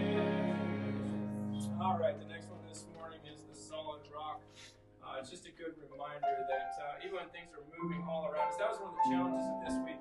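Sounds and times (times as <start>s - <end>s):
person singing a hymn: 0.0s - 2.2s
keyboard accompaniment: 0.0s - 4.7s, 5.9s - 10.0s.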